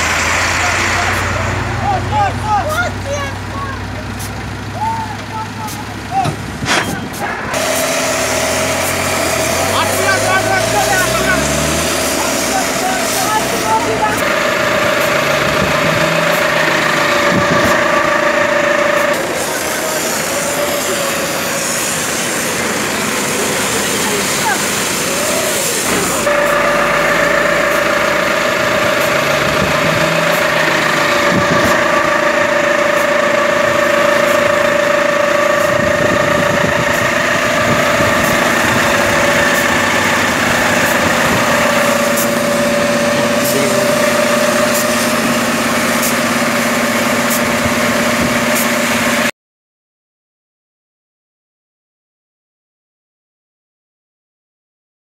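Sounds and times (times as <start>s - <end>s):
people talking and shouting: 0.0s - 49.2s
truck engine running: 0.0s - 49.3s
steady whine: 4.7s - 49.3s.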